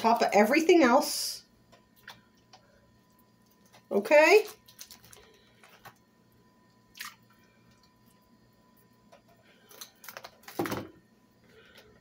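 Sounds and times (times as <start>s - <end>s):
plastic package crinkling: 4.4s - 6.0s, 9.6s - 10.8s.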